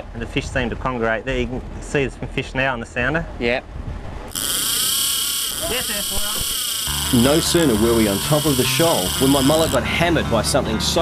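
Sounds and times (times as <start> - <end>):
fishing reel drag screaming: 4.3 - 10.0.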